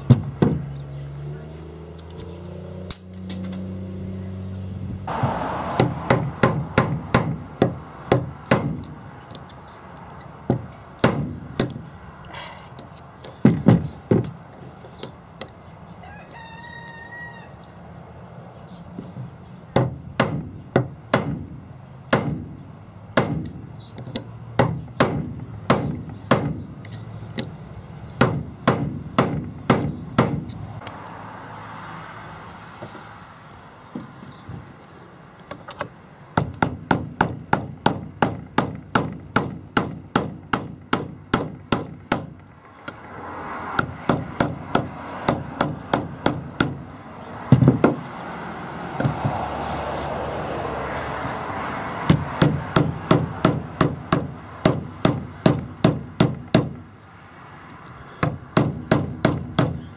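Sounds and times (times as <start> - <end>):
hammer striking metal punch: 5.7 - 9.0, 22.1 - 22.5, 23.2 - 23.6, 28.2 - 30.6
rooster crowing: 16.0 - 17.7.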